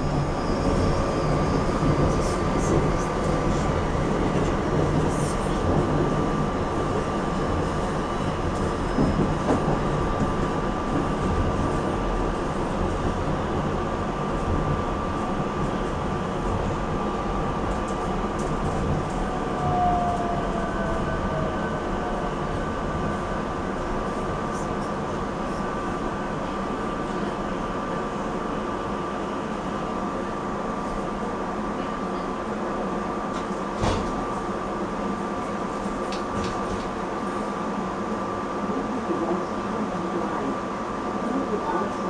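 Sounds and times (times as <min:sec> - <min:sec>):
wheels rumbling on rail: 0:00.0 - 0:42.0.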